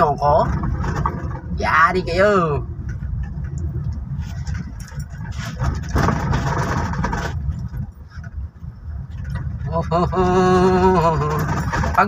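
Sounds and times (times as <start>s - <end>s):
car cabin engine and road noise: 0.0s - 12.0s.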